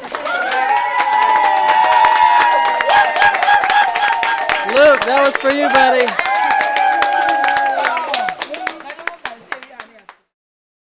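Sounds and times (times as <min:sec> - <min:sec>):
group clapping: 0:00.0 - 0:10.3.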